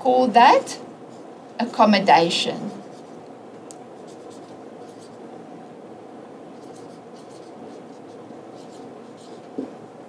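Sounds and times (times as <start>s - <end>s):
low room hiss: 0.0s - 10.0s
pen scratching on paper: 2.8s - 3.2s, 4.0s - 5.2s, 6.5s - 9.6s.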